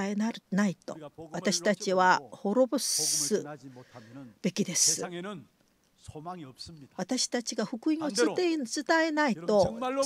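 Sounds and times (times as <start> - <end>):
man preaching: 0.9 - 2.3, 3.0 - 6.9, 8.0 - 8.6, 9.4 - 10.0.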